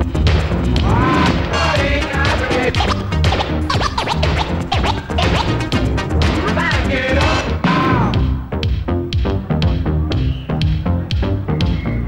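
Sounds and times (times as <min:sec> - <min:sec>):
music beat: 0:00.0 - 0:12.0
vinyl record scratching: 0:00.8 - 0:08.1.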